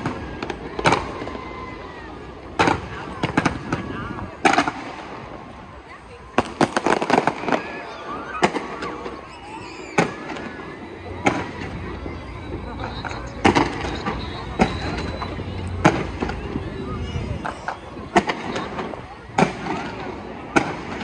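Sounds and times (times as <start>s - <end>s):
fireworks bangs: 0.0s - 21.0s.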